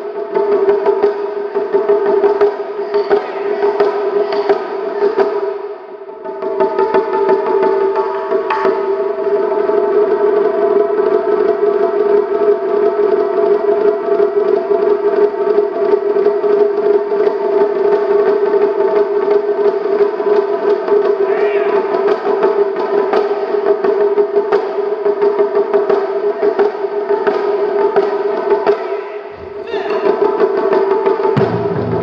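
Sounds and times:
taiko drums fast roll: 0:00.0 - 0:32.0
loud single drum strikes: 0:31.3 - 0:32.0.

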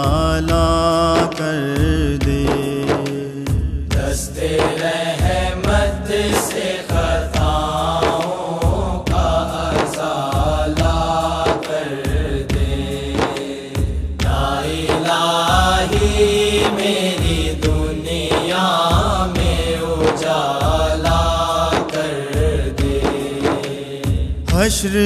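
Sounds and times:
wordless chanted vocals: 0:00.0 - 0:25.0.

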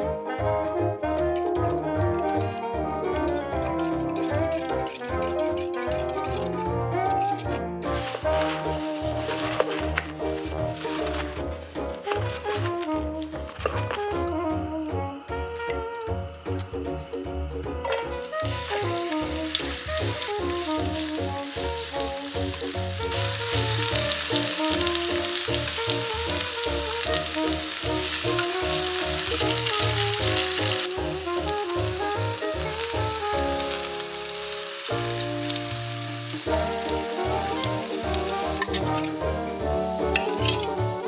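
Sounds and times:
background music: 0:00.0 - 0:41.0
food sizzling in a pan: 0:07.9 - 0:12.7, 0:13.3 - 0:41.0.

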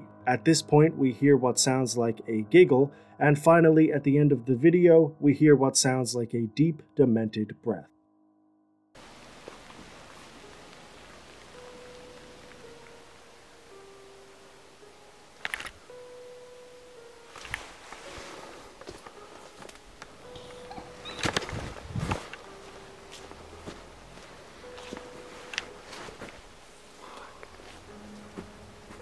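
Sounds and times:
faint slow tune: 0:00.0 - 0:29.0
steady hiss: 0:09.0 - 0:20.6.

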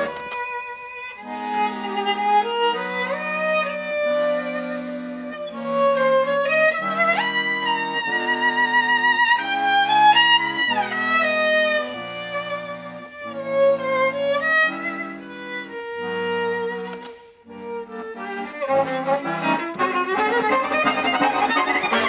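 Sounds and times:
accordion chords: 0:00.0 - 0:22.0
violin melody: 0:00.0 - 0:22.0.

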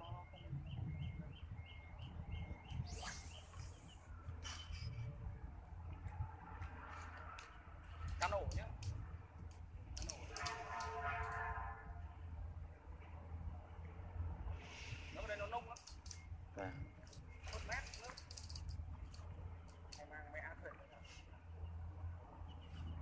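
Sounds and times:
low outdoor hum: 0:00.0 - 0:23.0
fishing line whooshing off reel: 0:02.8 - 0:05.0
reel clicks: 0:08.0 - 0:11.5, 0:15.7 - 0:16.2, 0:17.1 - 0:20.1.

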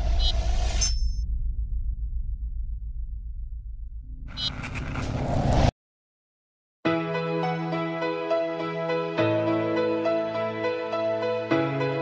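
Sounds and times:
deep pulsing rumble: 0:01.2 - 0:05.5.

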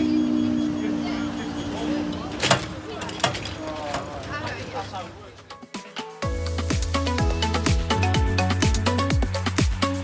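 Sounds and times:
street background noise: 0:00.0 - 0:10.0
people talking: 0:00.4 - 0:05.5.

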